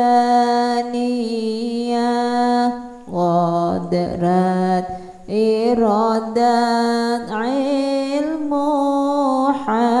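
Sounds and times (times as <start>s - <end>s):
person chanting a devotional hymn: 0.0s - 10.0s.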